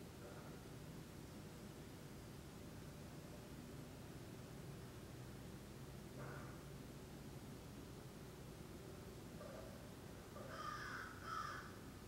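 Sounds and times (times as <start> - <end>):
faint bird calling: 10.4 - 11.8.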